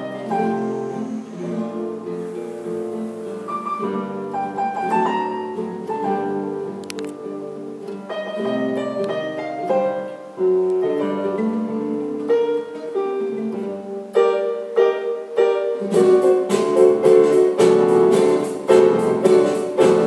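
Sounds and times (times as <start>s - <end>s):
acoustic guitar: 0.0s - 20.0s
keyboard piano sound: 0.0s - 20.0s.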